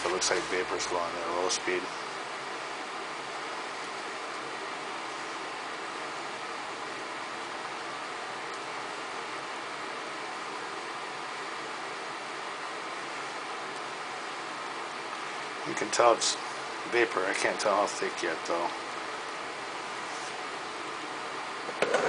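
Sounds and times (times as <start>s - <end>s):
fan airy hiss: 0.0s - 22.0s.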